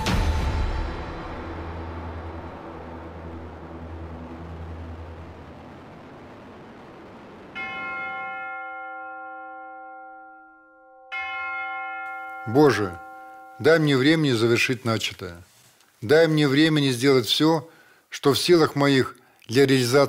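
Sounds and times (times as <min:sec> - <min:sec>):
music: 0:00.0 - 0:04.8
large church bell ringing: 0:07.6 - 0:14.0.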